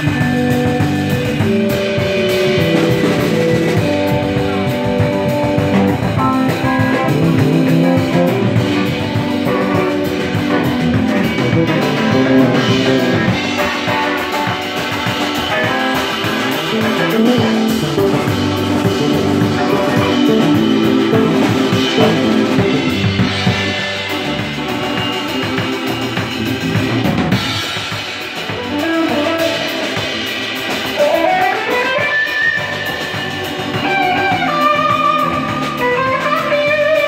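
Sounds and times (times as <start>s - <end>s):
drum kit: 0.0s - 37.0s
electric bass: 0.0s - 37.0s
electric guitar: 0.0s - 37.0s
hammond organ: 0.0s - 37.0s.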